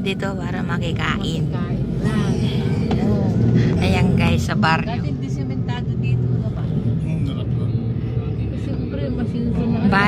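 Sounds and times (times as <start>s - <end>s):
vehicle engine humming: 0.0s - 10.0s
voices: 0.0s - 10.0s.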